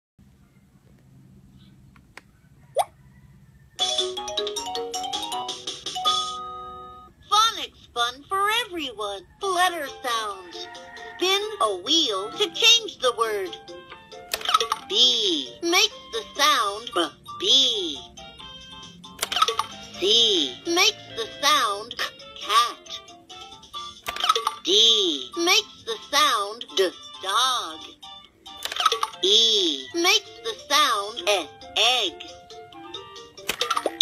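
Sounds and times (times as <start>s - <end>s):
electronic toy jingle: 3.8s - 7.1s
toy recorded voice talking: 7.2s - 13.7s, 14.3s - 18.2s, 19.2s - 23.2s, 24.0s - 32.6s
toy button click: 19.2s - 19.8s.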